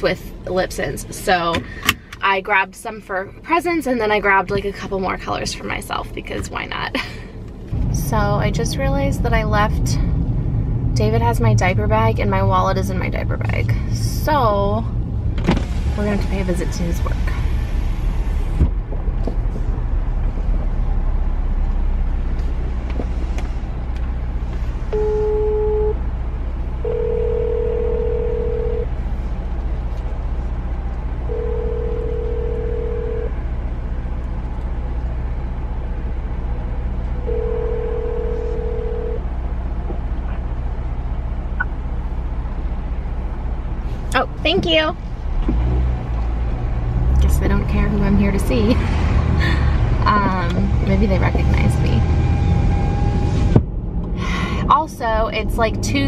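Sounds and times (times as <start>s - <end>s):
car cabin hum: 0.0s - 48.8s, 49.9s - 52.0s
phone ringback tone: 25.0s - 26.0s, 26.8s - 28.9s, 31.3s - 33.3s, 37.3s - 39.2s
short phone beep: 25.0s - 26.0s.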